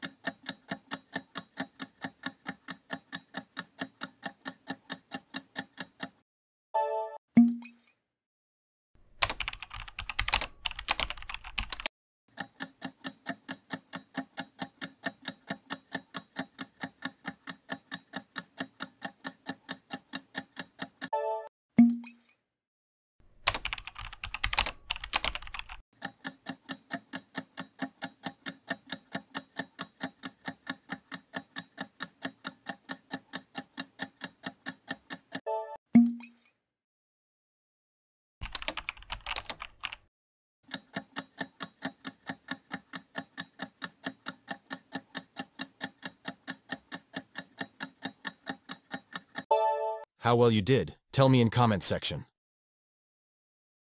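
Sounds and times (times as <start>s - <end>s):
countdown clock ticking: 0.0s - 6.2s, 12.4s - 21.1s, 26.0s - 35.4s, 40.7s - 49.5s
keyboard typing: 9.2s - 21.1s, 23.4s - 35.8s, 38.4s - 40.1s.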